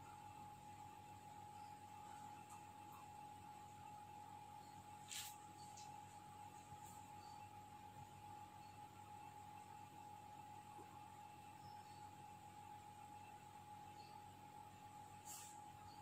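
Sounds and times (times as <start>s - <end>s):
thin steady whine: 0.0s - 16.0s.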